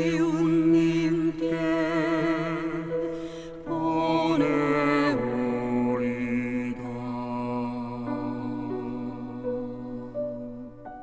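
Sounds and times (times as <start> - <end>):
man chanting: 0.0 - 10.7.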